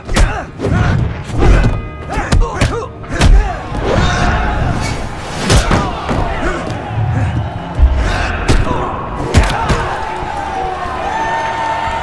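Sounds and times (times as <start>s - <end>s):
dramatic music score: 0.0s - 12.0s.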